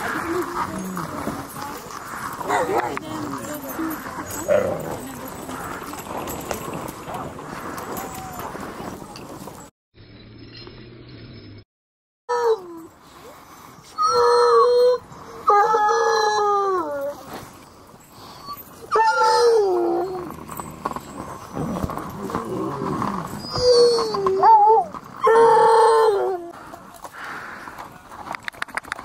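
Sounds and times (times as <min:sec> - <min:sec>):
sled dogs howling: 0:00.0 - 0:09.0, 0:18.4 - 0:26.6.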